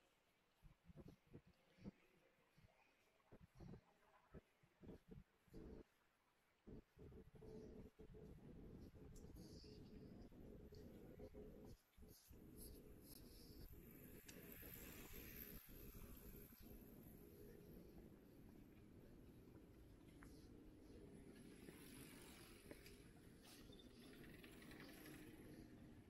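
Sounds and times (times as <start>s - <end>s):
steady low hum: 0.5s - 26.0s.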